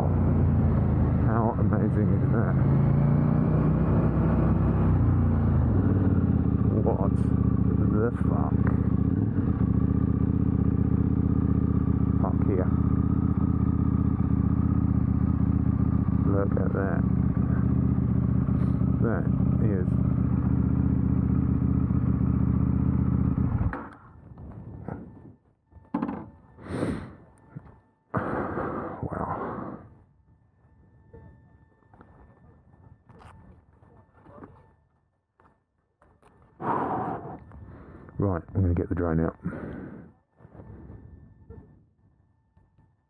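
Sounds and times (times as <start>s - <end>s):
motorcycle engine idling: 0.0s - 24.2s.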